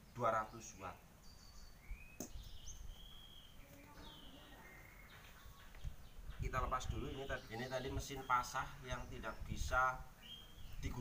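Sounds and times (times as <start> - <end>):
faint birdsong: 0.0 - 11.0.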